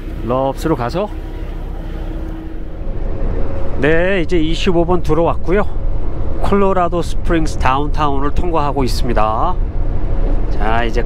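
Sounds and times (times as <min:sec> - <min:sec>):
diesel truck engine drone: 0:00.0 - 0:11.0
faint constant hum: 0:00.0 - 0:11.0.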